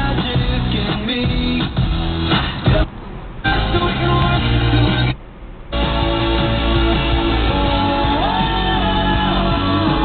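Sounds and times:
pop-rock song on car radio: 0.0s - 10.0s.

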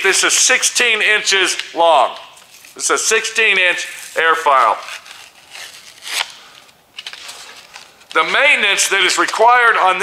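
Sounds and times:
rustling handling noise: 1.6s - 3.0s, 3.9s - 9.5s.

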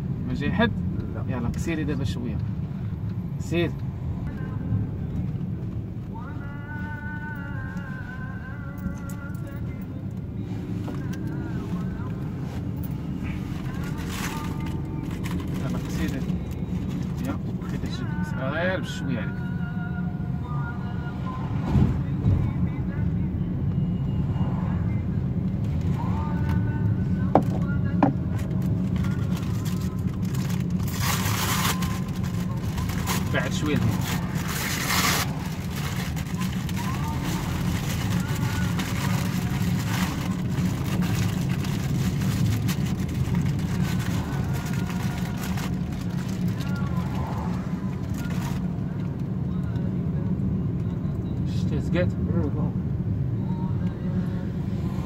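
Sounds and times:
car engine and tyres drone: 2.2s - 55.0s.

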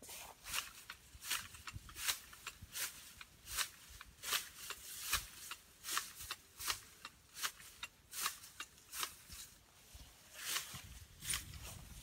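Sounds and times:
hand shears snipping stems: 0.4s - 9.6s, 10.4s - 12.0s
light shears click: 0.5s - 9.4s.

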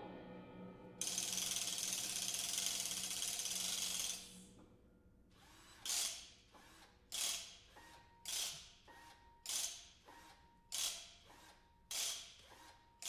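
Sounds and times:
fast mechanical ratcheting: 1.0s - 4.5s, 5.4s - 8.8s, 9.4s - 10.0s, 10.6s - 12.9s.

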